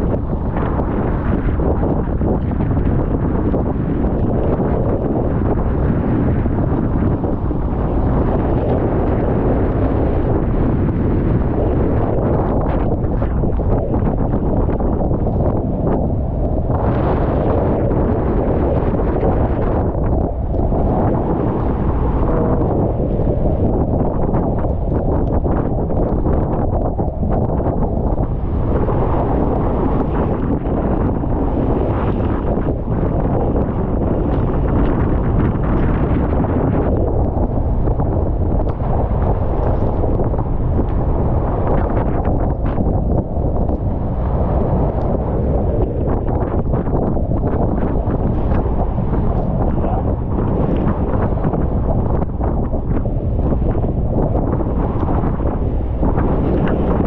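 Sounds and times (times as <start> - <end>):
sea washing against boat hull: 0.0 - 57.0
strong wind buffeting microphone: 0.0 - 57.0.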